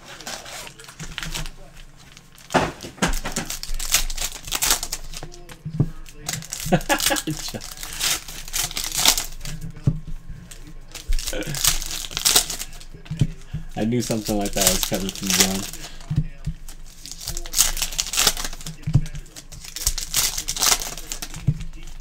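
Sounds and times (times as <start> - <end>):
card pack wrappers crinkling and tearing: 0.0 - 9.8, 10.5 - 22.0.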